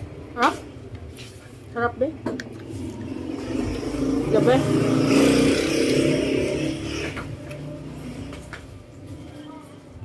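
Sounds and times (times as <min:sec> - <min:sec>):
passing vehicle engine: 0:02.5 - 0:09.6.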